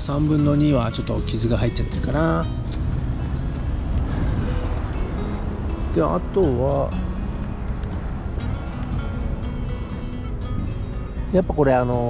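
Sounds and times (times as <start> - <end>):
background music: 0.0 - 12.0
low outdoor rumble: 0.0 - 12.0.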